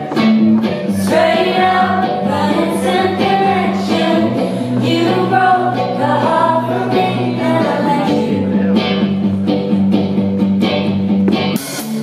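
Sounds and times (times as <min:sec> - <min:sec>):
country-pop band with strummed guitar: 0:00.0 - 0:12.0.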